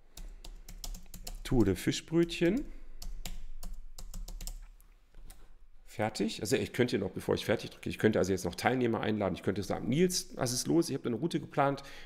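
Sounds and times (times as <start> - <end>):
typing on computer keyboard: 0.2 - 1.5, 2.5 - 4.7.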